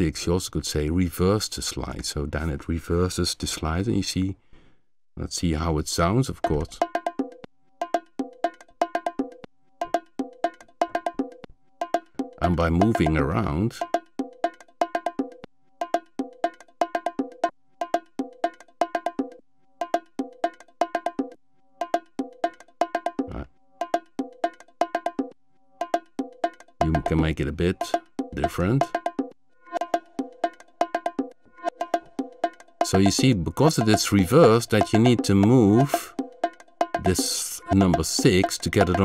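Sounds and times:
ringing bongo hits: 0:06.4 - 0:39.0.

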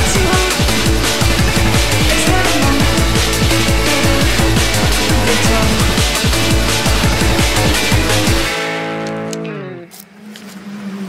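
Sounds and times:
sustained guitar chord sliding down: 0:00.0 - 0:09.8.

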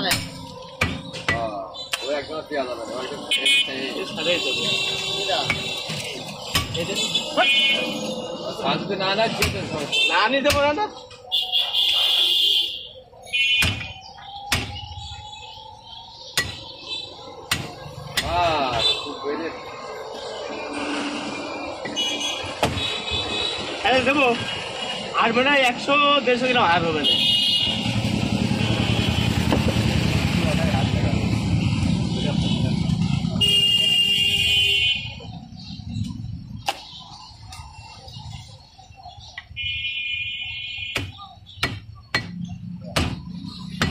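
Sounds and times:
cleaver chopping into wooden block: 0:40.9 - 0:43.2.

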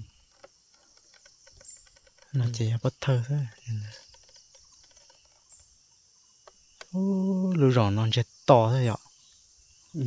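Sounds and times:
faint insects chirring: 0:00.0 - 0:10.0.

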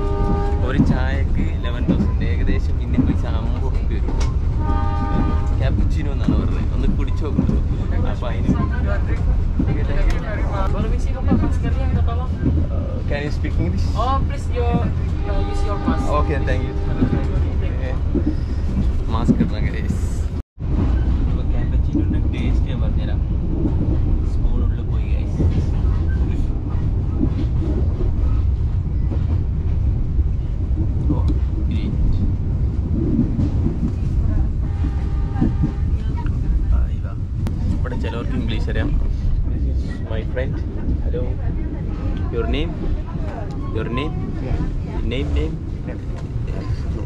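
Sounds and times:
faint passenger voices: 0:00.0 - 0:20.3, 0:21.0 - 0:28.5, 0:29.1 - 0:47.0
train carriage low rumble: 0:00.0 - 0:47.0.

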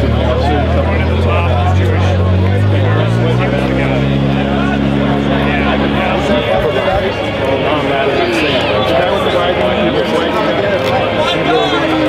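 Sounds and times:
people talking: 0:00.0 - 0:12.0
vehicle engine droning: 0:00.0 - 0:12.0.

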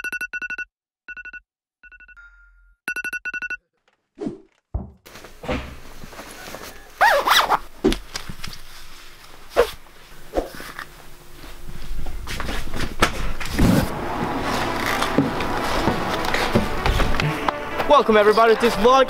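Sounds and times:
thumps: 0:04.7 - 0:06.0
nylon jacket rustling: 0:05.1 - 0:12.9.

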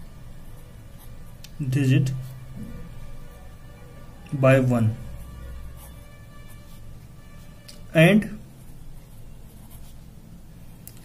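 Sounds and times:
pen scratching on paper: 0:08.6 - 0:10.1.

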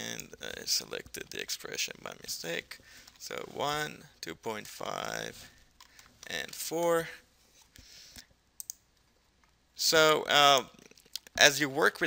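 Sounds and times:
computer mouse clicks: 0:08.6 - 0:08.8.

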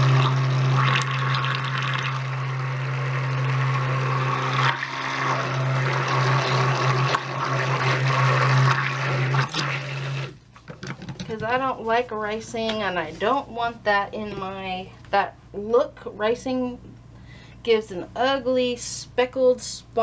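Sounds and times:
stick blender motor hum: 0:00.0 - 0:10.4
thick batter churning: 0:00.0 - 0:10.4.

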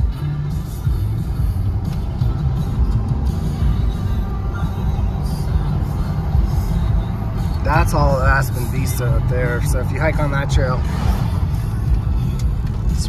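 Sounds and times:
car driving rumble: 0:00.0 - 0:13.0
music on car radio: 0:00.0 - 0:13.0.

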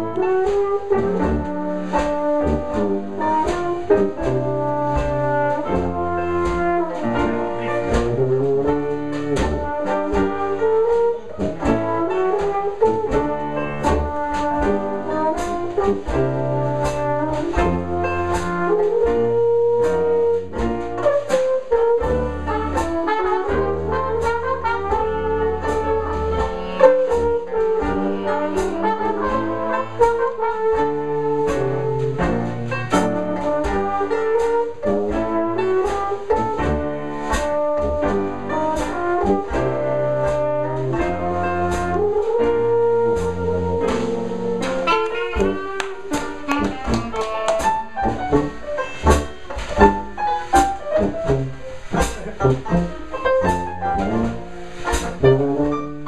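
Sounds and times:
banjo and drum beat: 0:00.0 - 0:56.0
jazz band playing: 0:00.0 - 0:56.0
tuba bass notes: 0:00.0 - 0:56.0.

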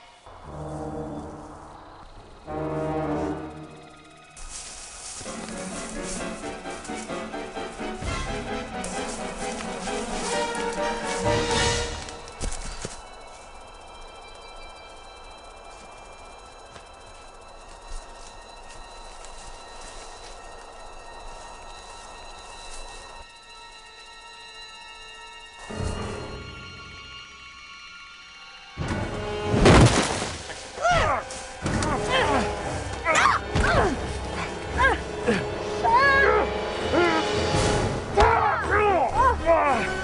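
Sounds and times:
rumbling ambient drone: 0:00.0 - 0:26.8
background music: 0:00.0 - 0:40.0
person crying out high-pitched: 0:35.8 - 0:37.3.

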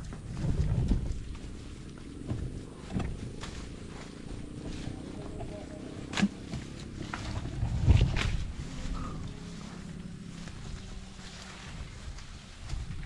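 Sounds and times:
footsteps rustling through grass: 0:00.0 - 0:13.0
wind rumble on microphone: 0:00.0 - 0:13.0.

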